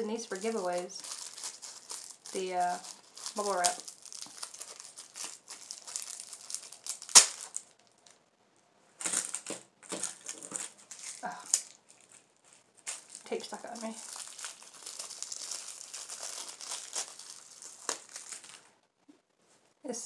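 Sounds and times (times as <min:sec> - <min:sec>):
bubble wrap crinkling: 0:00.0 - 0:08.2, 0:09.0 - 0:18.8
sharp crack of bubble wrap: 0:00.4 - 0:08.2, 0:09.0 - 0:18.7.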